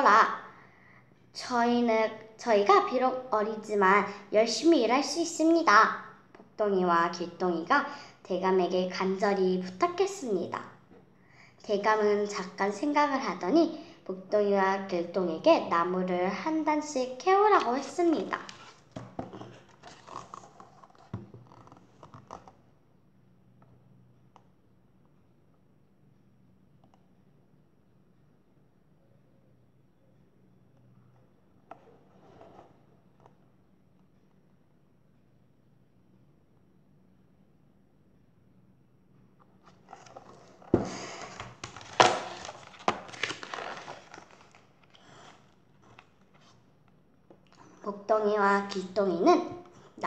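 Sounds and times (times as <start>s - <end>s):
low steady hum: 0.0s - 50.0s
paper pages rustling: 17.6s - 22.6s, 39.7s - 46.6s.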